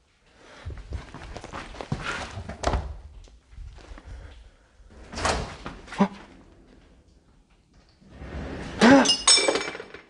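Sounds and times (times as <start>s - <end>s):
glass clinking: 8.9s - 10.0s.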